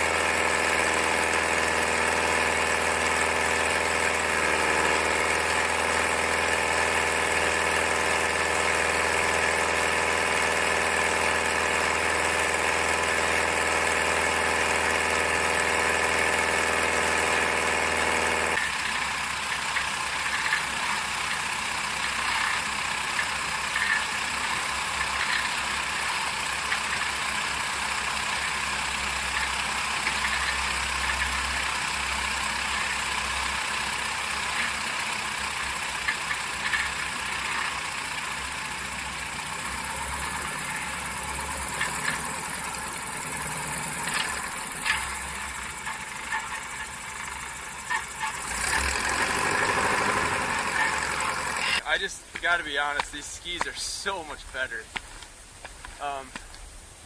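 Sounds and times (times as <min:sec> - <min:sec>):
skis sliding on snow: 0:48.5 - 0:56.4.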